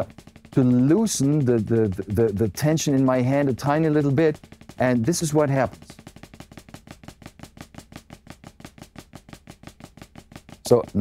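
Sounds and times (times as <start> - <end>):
drumsticks on practice pad: 0.0 - 11.0.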